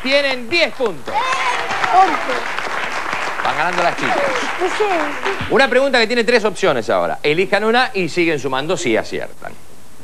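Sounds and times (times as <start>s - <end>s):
audience applauding: 0.0s - 6.0s
children shouting excitedly: 1.1s - 2.5s.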